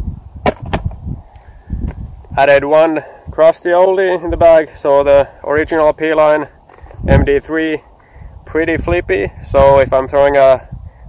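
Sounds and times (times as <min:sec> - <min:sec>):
plastic discs clacking: 0:06.6 - 0:07.1.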